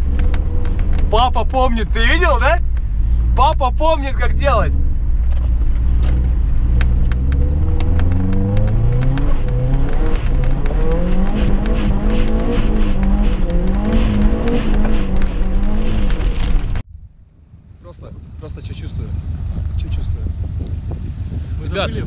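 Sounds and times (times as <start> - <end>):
car engine revving hard: 5.8 - 16.8.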